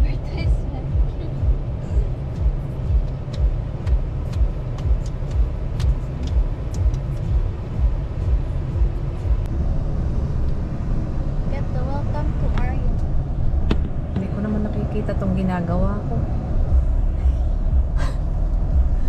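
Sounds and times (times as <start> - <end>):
road and engine rumble: 0.0 - 19.0
steady low thump: 0.9 - 19.0
voices: 11.5 - 13.1, 14.1 - 16.5.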